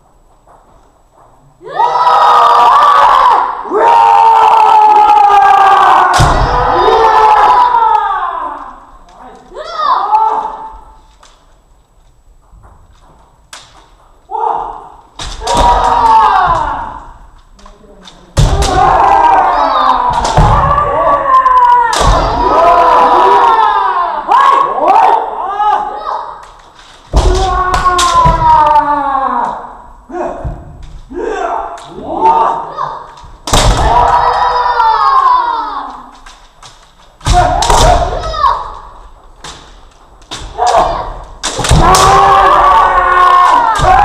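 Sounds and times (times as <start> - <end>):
long shouted cries: 1.6 - 8.8, 14.3 - 17.1, 18.6 - 26.2, 33.8 - 36.1, 41.7 - 44.0
bamboo swords striking armour: 37.2 - 38.2, 39.4 - 42.4.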